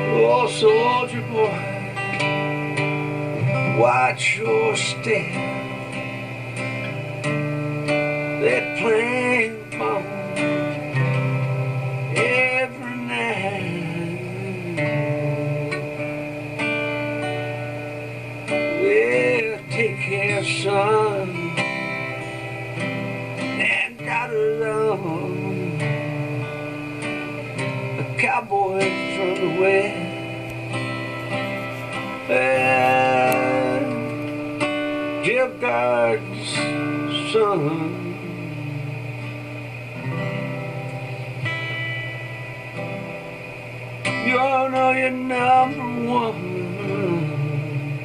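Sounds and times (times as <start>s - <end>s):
strummed guitar: 0.0s - 48.0s
man singing long note: 32.3s - 34.1s.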